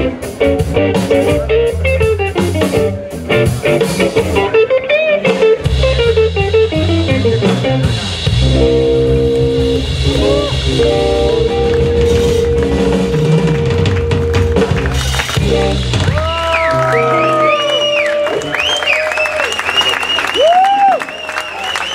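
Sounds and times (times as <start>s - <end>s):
blues band playing: 0.0s - 20.5s.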